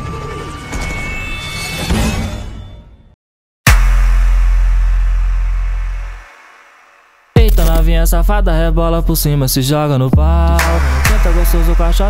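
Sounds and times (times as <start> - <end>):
deep bass boom: 3.7 - 6.8.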